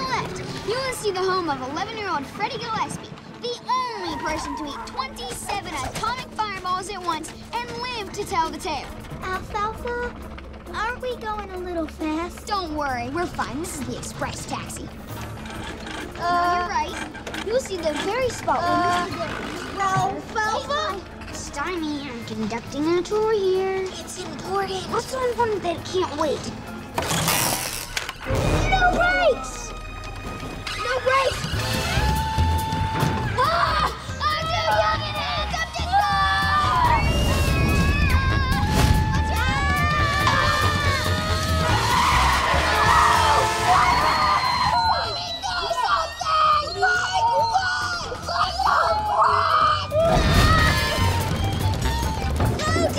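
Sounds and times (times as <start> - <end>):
background music: 0.0 - 52.9
wooden cart wheels squealing: 0.0 - 52.9.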